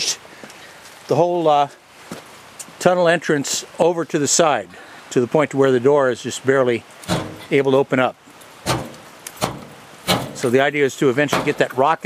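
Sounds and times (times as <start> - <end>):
metal door dull knocks: 7.1 - 7.5, 8.6 - 10.5, 11.3 - 11.7.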